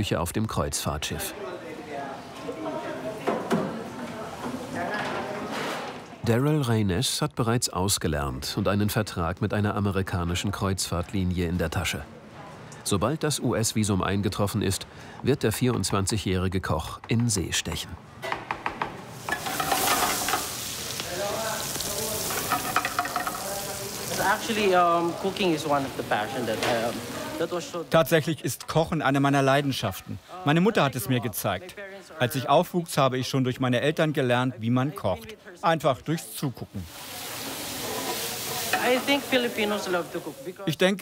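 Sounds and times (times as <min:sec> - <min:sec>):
vegetables sizzling in a skillet: 0:19.0 - 0:28.0, 0:36.6 - 0:40.7.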